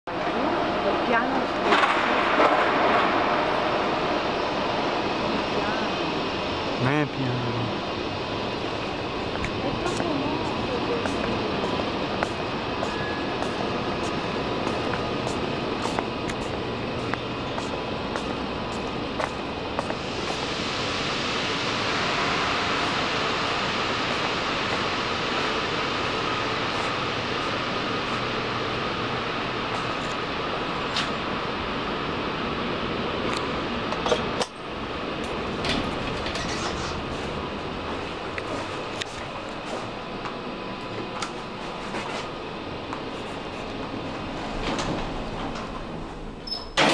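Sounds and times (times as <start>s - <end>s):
rushing noise: 0.1s - 46.9s
distant crowd voices: 3.0s - 30.5s
footsteps echoing in a hall: 9.3s - 20.5s.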